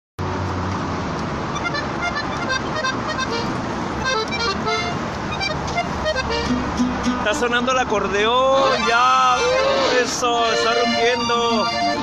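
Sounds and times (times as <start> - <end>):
road traffic noise: 0.2 - 12.0
accordion short notes: 1.5 - 7.5, 8.5 - 12.0.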